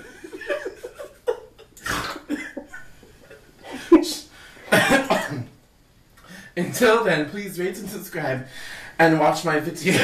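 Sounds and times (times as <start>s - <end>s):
person coughing: 1.8s - 2.6s, 4.7s - 5.6s.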